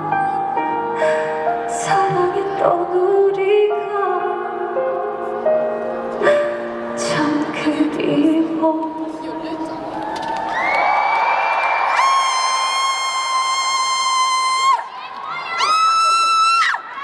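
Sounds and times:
arena crowd cheering: 0:09.8 - 0:17.0.

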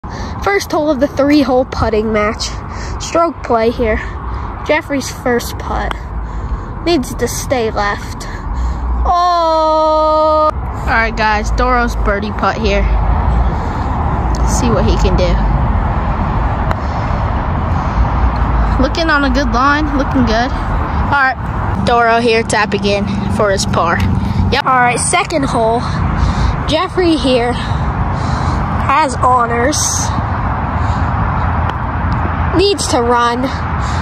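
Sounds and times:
low rumble: 0:03.9 - 0:34.0.

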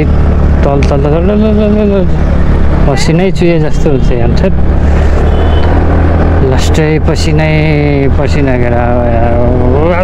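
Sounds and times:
rider speaking: 0:00.0 - 0:04.7.

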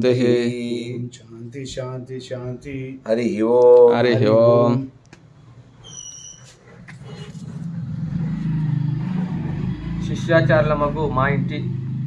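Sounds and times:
vehicle engine running: 0:07.0 - 0:12.0.

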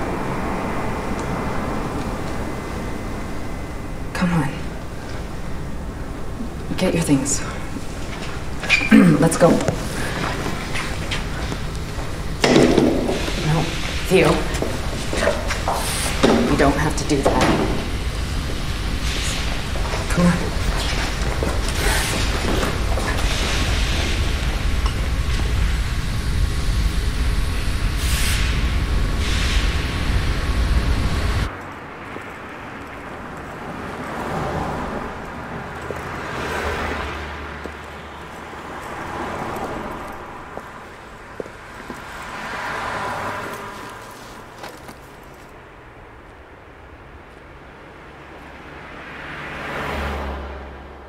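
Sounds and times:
machine shop rumble: 0:00.0 - 0:45.6
cars passing on a street: 0:00.0 - 0:51.0.

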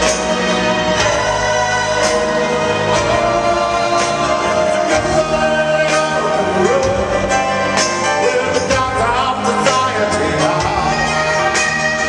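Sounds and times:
distant live rock band: 0:00.0 - 0:12.0.

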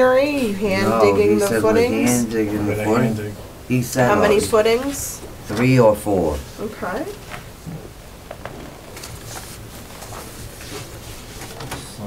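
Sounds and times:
steady low hum: 0:00.0 - 0:12.0
papers rustling: 0:08.3 - 0:12.0.

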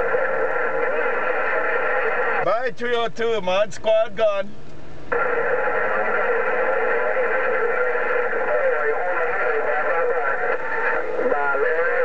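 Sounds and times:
sliding radio tones: 0:00.0 - 0:02.4, 0:05.1 - 0:12.0
tinny radio voice garbled: 0:00.0 - 0:02.4, 0:05.1 - 0:12.0
steady radio tones: 0:00.0 - 0:04.5, 0:05.1 - 0:12.0.

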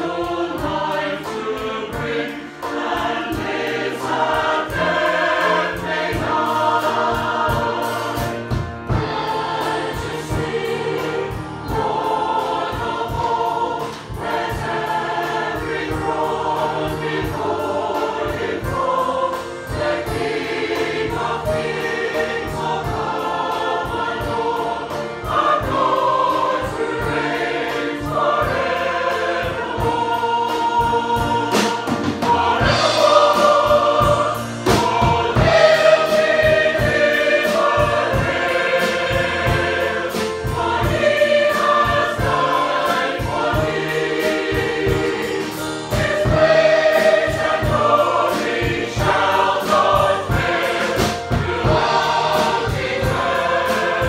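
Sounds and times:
accompaniment with steady beat: 0:00.0 - 0:54.0
mixed choir singing: 0:00.0 - 0:54.0.

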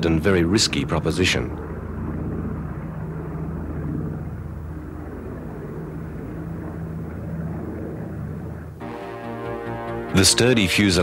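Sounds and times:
propeller aircraft engines droning: 0:00.0 - 0:11.0.

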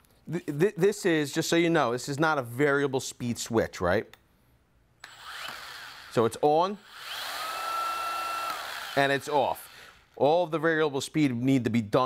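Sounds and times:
sander motor whirring: 0:05.0 - 0:10.2.

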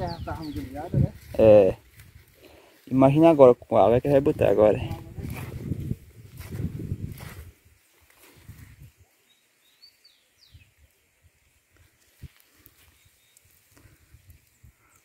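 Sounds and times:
bird chirping: 0:00.0 - 0:01.1, 0:09.2 - 0:10.8
footsteps through leafy plants: 0:00.0 - 0:09.2.

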